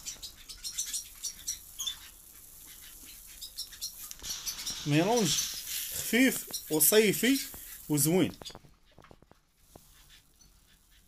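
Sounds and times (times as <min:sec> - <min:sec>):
birdseed rustling and pattering: 0:00.0 - 0:11.0.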